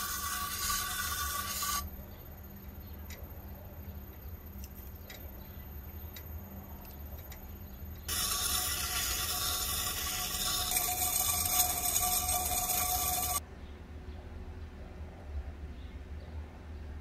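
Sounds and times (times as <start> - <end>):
knife on grinding wheel: 0.0 - 2.0, 8.1 - 13.4.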